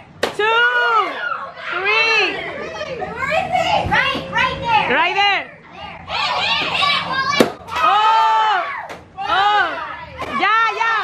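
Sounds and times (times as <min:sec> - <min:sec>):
children shouting and cheering: 0:00.6 - 0:04.9, 0:05.7 - 0:11.0.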